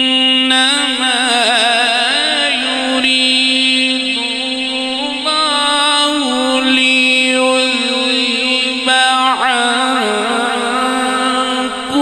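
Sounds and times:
man reciting melodically: 0.0 - 12.0.

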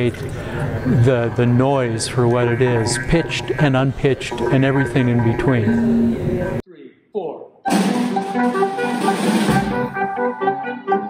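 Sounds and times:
small ensemble playing short notes: 7.7 - 11.0.

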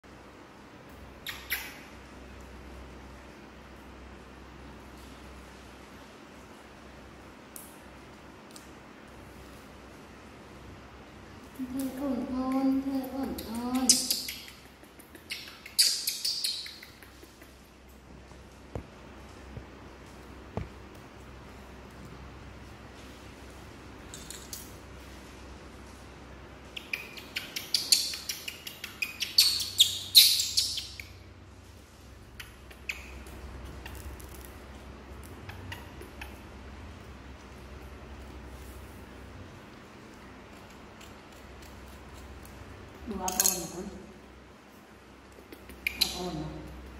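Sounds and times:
young macaque chirping calls: 1.2 - 1.9, 13.8 - 17.0, 26.8 - 31.1, 35.4 - 36.4.

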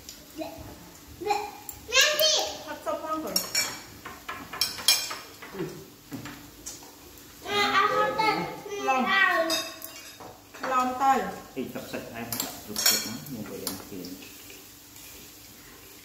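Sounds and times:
chopsticks clinking on metal pan: 3.3 - 5.5, 9.4 - 11.0, 12.2 - 14.4.

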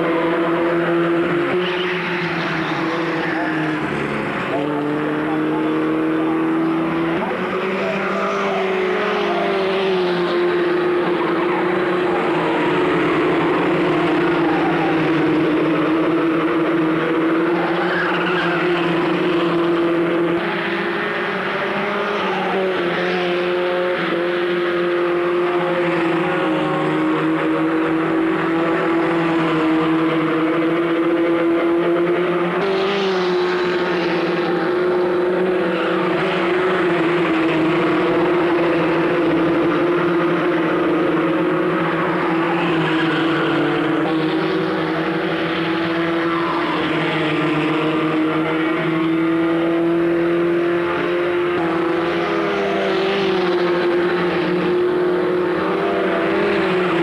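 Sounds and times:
racing car engines drone: 0.0 - 57.0.

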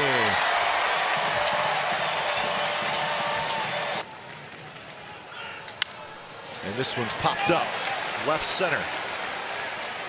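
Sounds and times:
crowd cheering and applauding: 0.0 - 4.6, 6.7 - 10.0
stadium crowd noise: 0.0 - 10.0.

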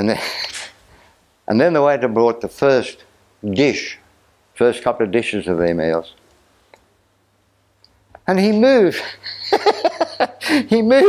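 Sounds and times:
man speaking: 0.0 - 0.8, 1.5 - 6.2, 8.2 - 9.2, 10.5 - 11.0.

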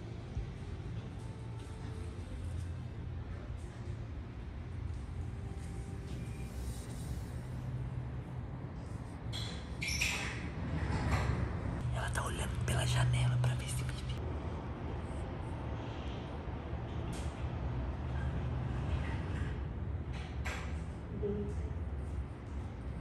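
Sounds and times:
steady low hum: 0.0 - 9.8
quiet whispering: 11.8 - 14.2.

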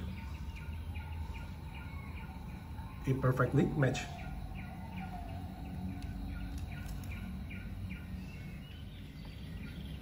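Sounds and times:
bird chirping faintly: 0.0 - 10.0
low steady hum: 0.0 - 10.0.

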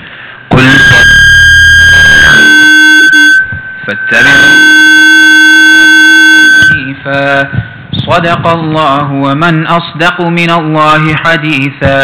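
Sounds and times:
microphone feedback howl: 0.3 - 9.8.

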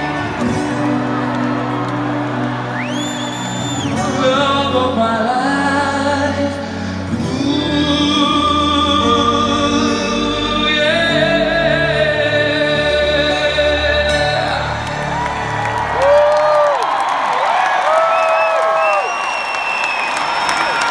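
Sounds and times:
audience cheering and whooping: 0.0 - 4.4, 14.4 - 20.9
acoustic guitar: 0.0 - 16.0
person singing: 3.7 - 15.4.

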